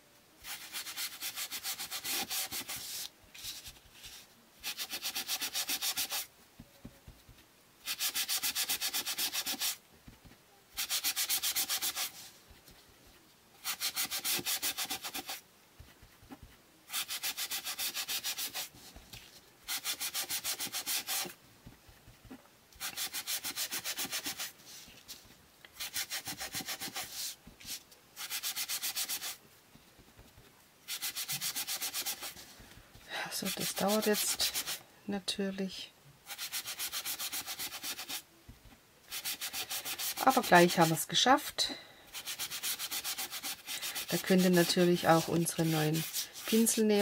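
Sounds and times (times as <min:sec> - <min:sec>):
sponge rubbing on cardstock: 0:00.4 - 0:06.2, 0:07.8 - 0:12.3, 0:13.6 - 0:18.9, 0:19.7 - 0:21.3, 0:22.3 - 0:25.0, 0:25.8 - 0:29.4, 0:30.9 - 0:32.5, 0:33.4 - 0:34.8, 0:36.3 - 0:38.2, 0:39.1 - 0:41.0, 0:42.1 - 0:47.0.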